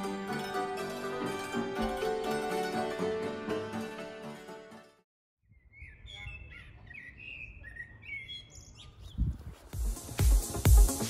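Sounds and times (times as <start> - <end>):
songbird singing: 5.4 - 9.7
electronic dance music: 9.8 - 11.0.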